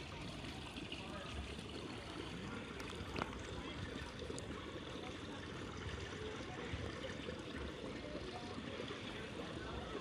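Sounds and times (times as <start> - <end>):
pool water trickling and lapping: 0.0 - 10.0.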